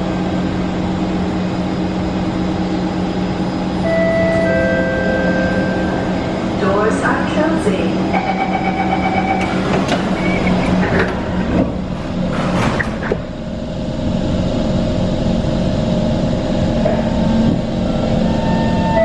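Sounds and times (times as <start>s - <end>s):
steady low hum: 0.0s - 19.0s
traction motor whine: 13.3s - 19.0s.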